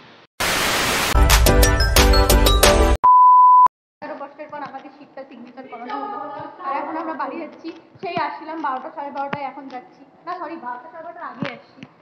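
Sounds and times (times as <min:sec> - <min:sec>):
hissing static: 0:00.4 - 0:01.2
high beep: 0:03.0 - 0:03.7.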